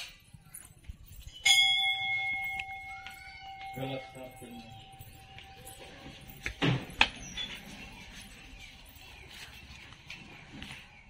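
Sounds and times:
temple bell ringing: 1.1s - 9.0s.

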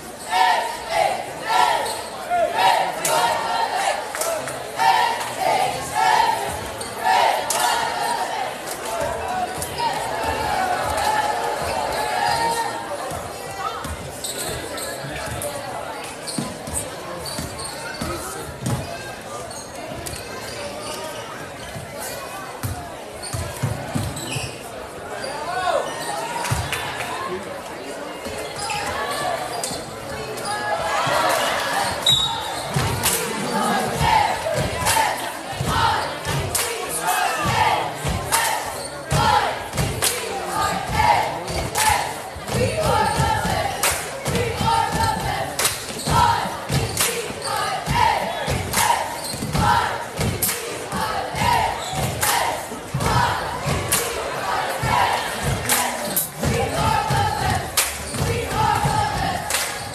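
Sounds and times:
crowd voices and shouts: 0.0s - 59.9s.

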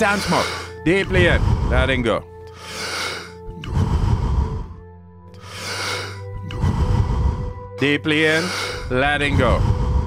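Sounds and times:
ambient music drone: 0.0s - 10.0s
deep forceful breathing: 0.1s - 10.0s.

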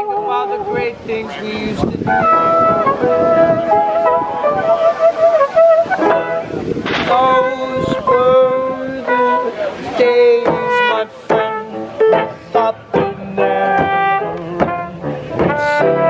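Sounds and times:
trumpet melody: 0.0s - 16.0s
upright piano accompaniment: 0.0s - 16.0s.

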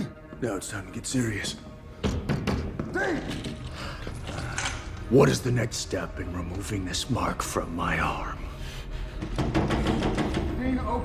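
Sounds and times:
dark musical underscore: 0.0s - 11.0s
sharp knocks: 9.2s - 10.6s.

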